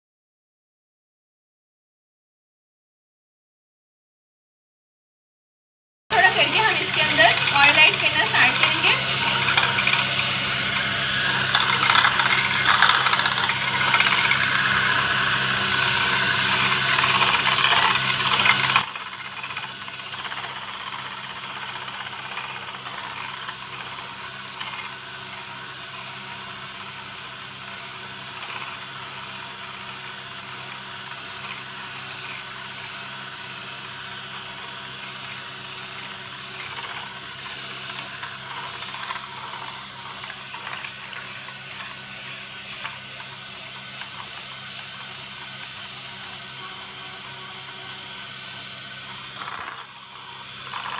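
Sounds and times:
electric hand mixer whisking: 0:06.1 - 0:50.9.

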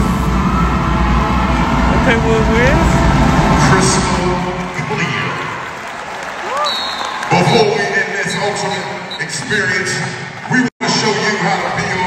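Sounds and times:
steady low rumble: 0:00.0 - 0:05.8
crowd voices: 0:00.0 - 0:12.0.

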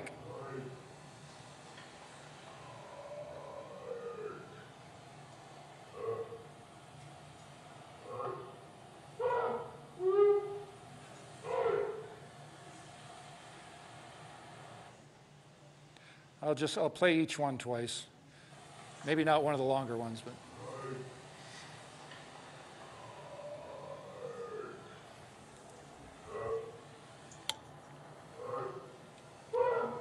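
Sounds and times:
gliding animal call: 0:02.5 - 0:04.6, 0:22.8 - 0:25.1.

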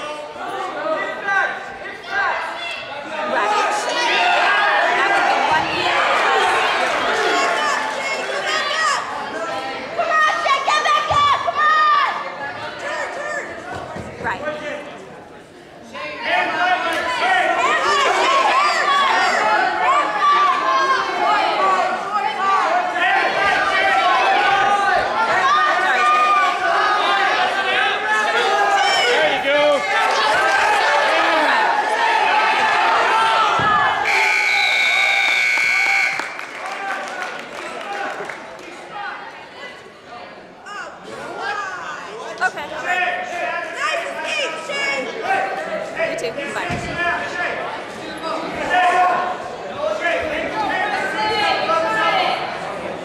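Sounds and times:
crowd voices: 0:00.0 - 0:53.0
spectators shouting: 0:16.2 - 0:37.1.

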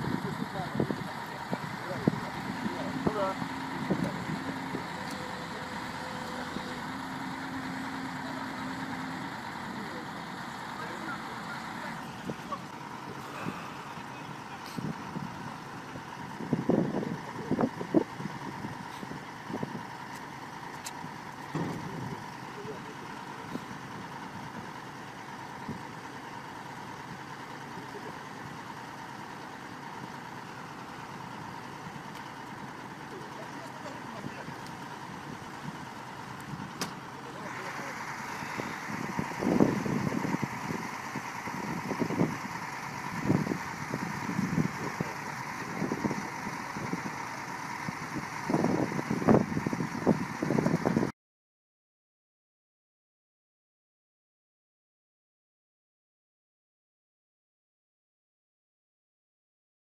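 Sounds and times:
indistinct voices: 0:00.0 - 0:19.1, 0:20.9 - 0:49.6
excavator diesel engine running: 0:00.0 - 0:51.1.

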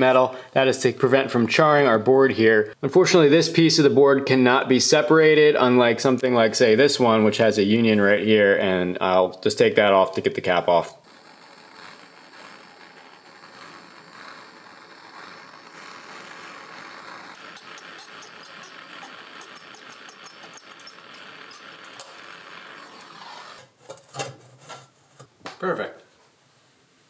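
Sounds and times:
faint crackling: 0:10.1 - 0:25.6
hand torch hissing: 0:11.0 - 0:23.8.

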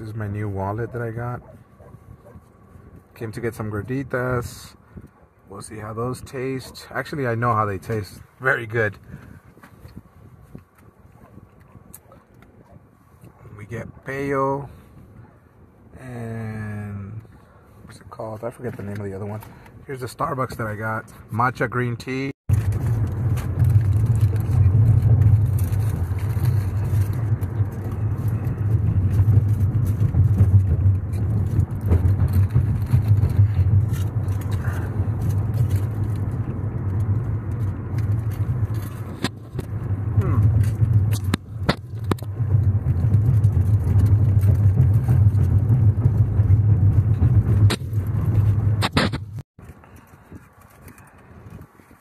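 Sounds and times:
road and engine rumble: 0:00.0 - 0:52.0.

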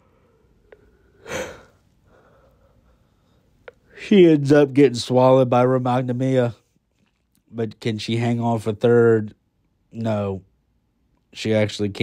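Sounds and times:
man breathing through nose: 0:00.0 - 0:03.6.

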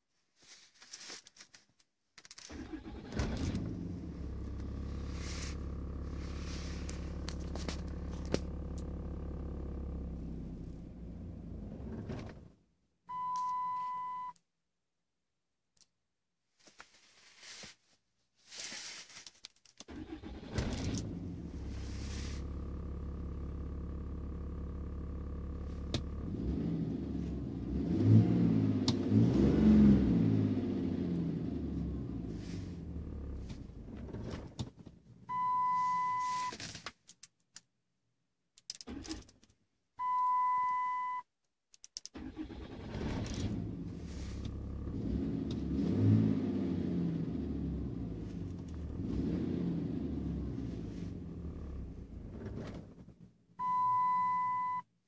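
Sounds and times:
diesel engine running: 0:02.8 - 0:12.1
clicks: 0:41.7 - 0:42.2.

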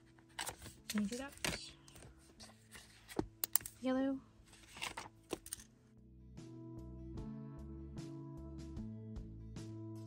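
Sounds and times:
paper and plastic handling clicks: 0:00.2 - 0:03.8, 0:04.6 - 0:05.7.

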